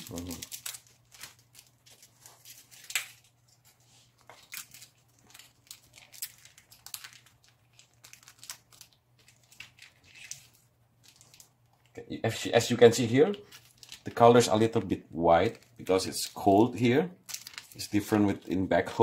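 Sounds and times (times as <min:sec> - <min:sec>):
plastic sachets crinkling: 0:00.0 - 0:12.0, 0:12.6 - 0:18.9.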